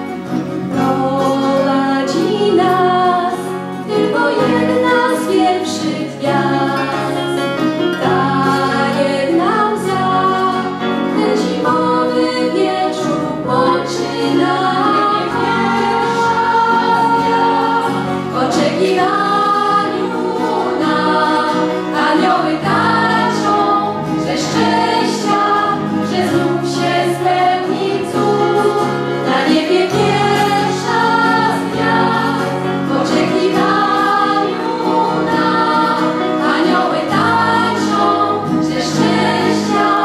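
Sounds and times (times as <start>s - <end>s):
acoustic guitar: 0.0s - 40.0s
women singing carol in harmony: 0.6s - 40.0s.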